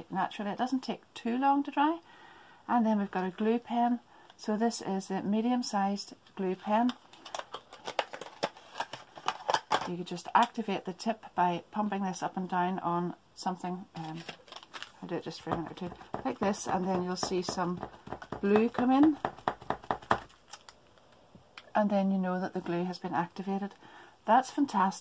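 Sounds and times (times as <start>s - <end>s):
plastic packaging clicking and crackling: 6.8s - 10.6s, 14.0s - 16.8s, 17.4s - 21.7s.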